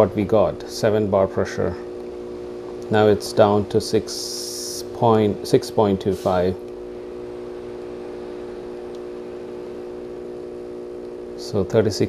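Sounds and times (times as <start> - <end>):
espresso machine pump humming: 0.0 - 12.0.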